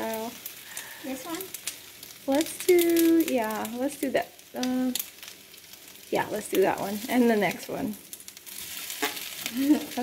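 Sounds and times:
food sizzling in frying pan: 0.0 - 10.0.

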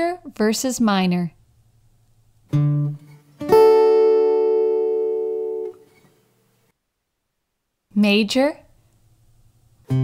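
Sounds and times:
strummed guitar chord: 2.5 - 5.9
guitar low note: 2.5 - 6.0.

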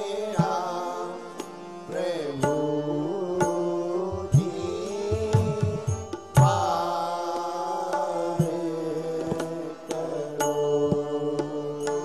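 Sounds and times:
devotional chanting into microphone: 0.0 - 12.0
sustained instrumental accompaniment: 0.0 - 12.0.

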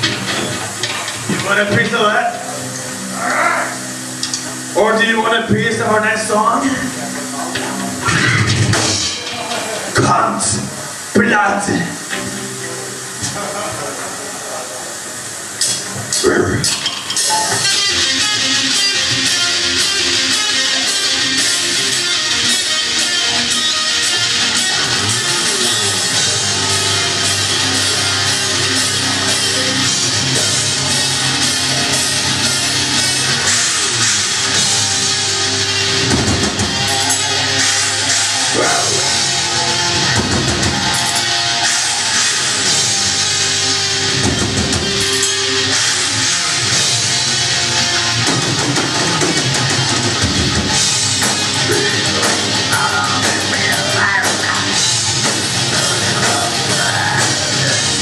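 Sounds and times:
drum kit: 0.0 - 4.9, 6.6 - 14.1, 15.6 - 58.0
bass guitar: 0.0 - 11.0, 17.5 - 58.0
heavy metal band playing live: 0.0 - 13.6, 15.2 - 58.0
distorted electric guitars: 0.0 - 58.0.

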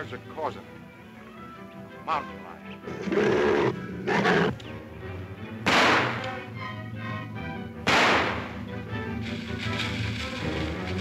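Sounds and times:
background music: 0.0 - 11.0
gunshot: 5.6 - 6.4, 7.8 - 8.6.

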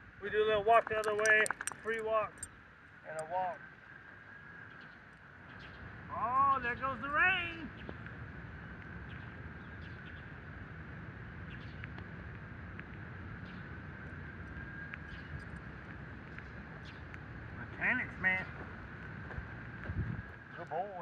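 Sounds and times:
outdoor background noise: 0.0 - 21.0.

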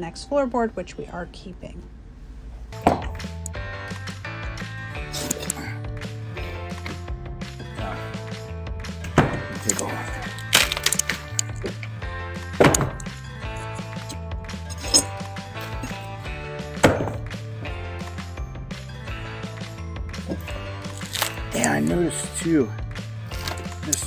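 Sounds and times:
background music: 0.0 - 1.5, 2.6 - 24.0
wooden floorboards cracking: 9.2 - 11.9.

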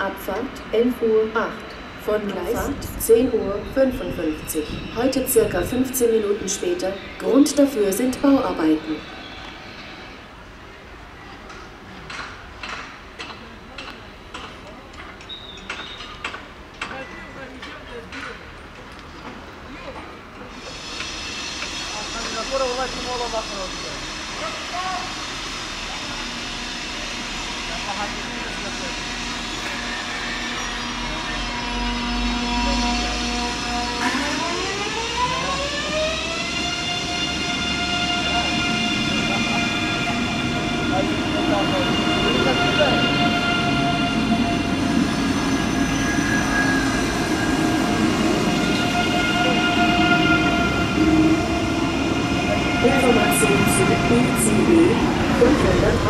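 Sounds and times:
electric train whine: 0.0 - 13.2, 18.6 - 56.0.

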